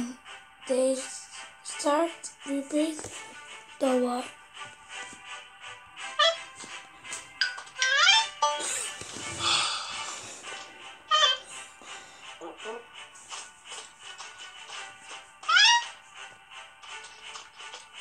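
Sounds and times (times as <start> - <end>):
background music: 0.0 - 18.0
cartoon voice calls: 6.2 - 6.5, 7.8 - 8.4, 11.1 - 11.4, 15.4 - 16.0.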